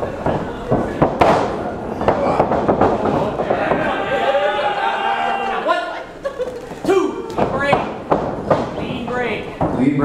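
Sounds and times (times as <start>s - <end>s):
wrestlers' strikes smacking: 0.7s - 4.0s, 7.3s - 9.0s.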